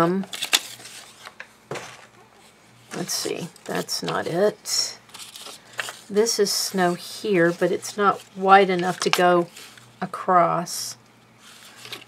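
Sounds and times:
paper and card clicks: 0:00.2 - 0:01.5.

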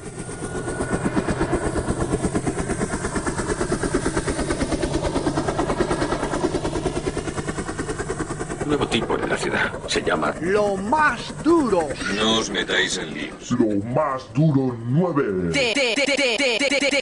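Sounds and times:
rapidly pulsing mechanical noise: 0:00.0 - 0:14.5, 0:15.6 - 0:17.0.

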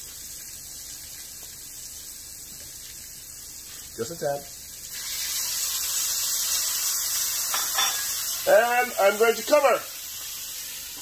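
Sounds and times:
water hissing in hot pan: 0:00.0 - 0:11.0.

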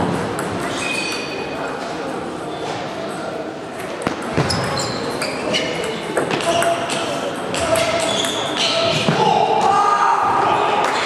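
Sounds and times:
sneaker squeaks on floor: 0:00.6 - 0:01.6, 0:04.0 - 0:07.0, 0:07.6 - 0:09.2.

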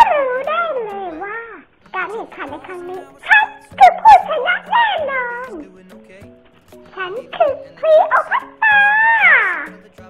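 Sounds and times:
high-pitched voice calling out: 0:00.0 - 0:05.6, 0:06.9 - 0:09.8
background music: 0:00.0 - 0:10.0.

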